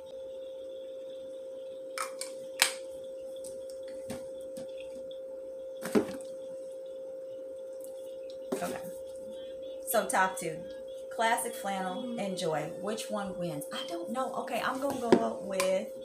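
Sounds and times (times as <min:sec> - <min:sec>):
steady high-pitched hum: 0:00.0 - 0:16.0
bottles knocking and tapping: 0:14.8 - 0:15.7.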